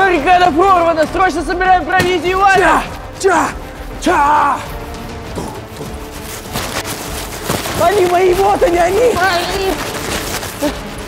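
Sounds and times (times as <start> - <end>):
footsteps running on artificial turf: 0.0 - 11.0.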